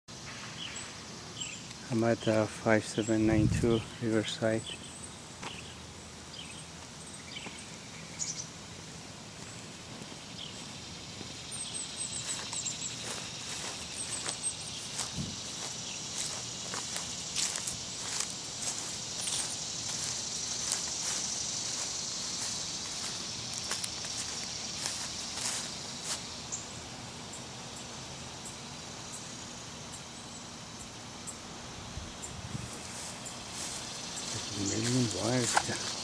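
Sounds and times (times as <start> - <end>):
man speaking: 1.9 - 4.8, 34.3 - 36.0
footsteps on grass: 9.0 - 26.6, 32.4 - 36.0.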